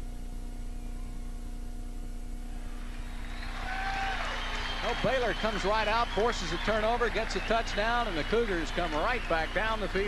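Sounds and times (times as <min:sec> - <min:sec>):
steady low hum: 0:00.0 - 0:10.0
faint stadium crowd noise: 0:02.4 - 0:10.0.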